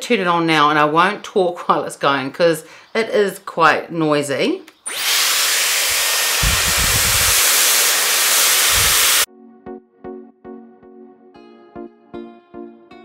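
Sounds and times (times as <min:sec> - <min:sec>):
hair styler blowing air: 0:04.9 - 0:09.3.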